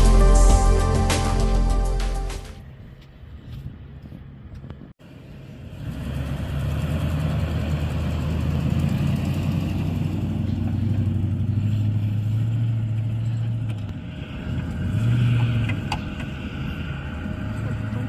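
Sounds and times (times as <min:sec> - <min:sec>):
engine revving: 0:05.6 - 0:18.0.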